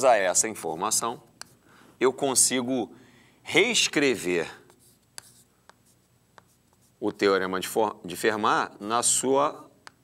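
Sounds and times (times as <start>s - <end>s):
chalk writing on blackboard: 4.4s - 7.2s
sharp chalk taps: 4.7s - 7.0s.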